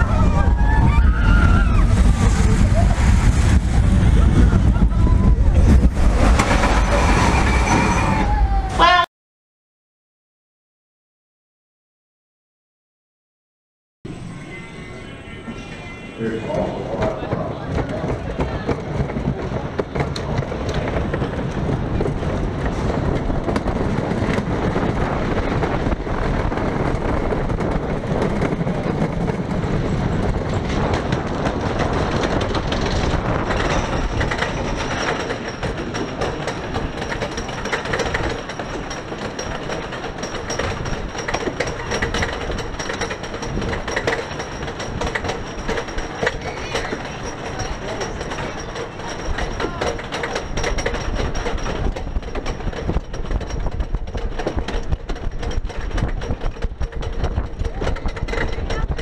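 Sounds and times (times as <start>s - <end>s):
roller coaster rumbling on track: 0.0s - 9.1s, 14.1s - 59.0s
lift chain clattering: 32.3s - 59.0s.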